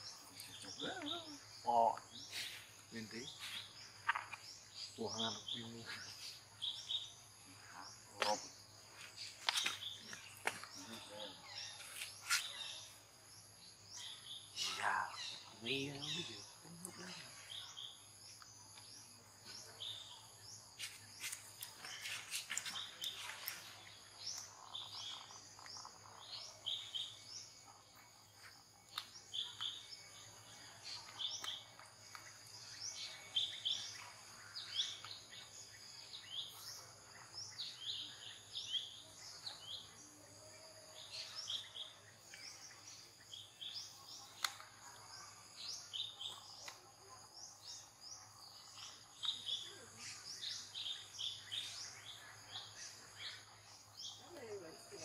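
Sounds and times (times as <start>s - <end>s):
high insect drone: 0.0s - 31.6s
bird chirps: 0.0s - 55.0s.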